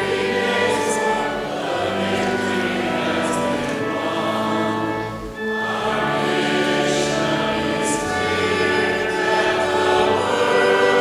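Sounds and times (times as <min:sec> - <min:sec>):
congregation singing a hymn: 0:00.0 - 0:11.0
pipe organ chords: 0:00.0 - 0:11.0.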